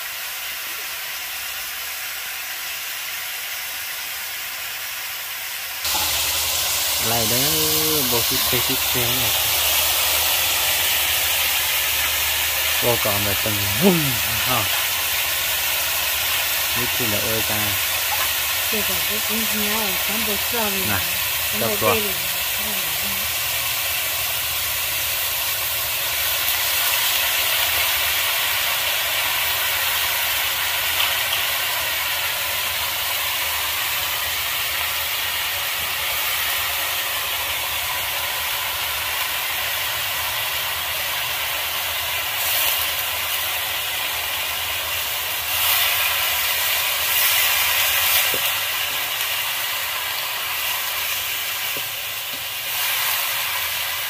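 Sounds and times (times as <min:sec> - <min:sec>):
food sizzling in a wok: 0:00.0 - 0:54.0.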